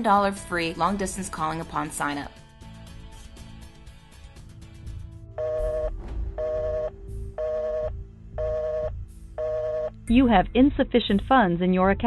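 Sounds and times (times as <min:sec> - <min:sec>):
telephone busy signal beeping: 0:05.4 - 0:10.0.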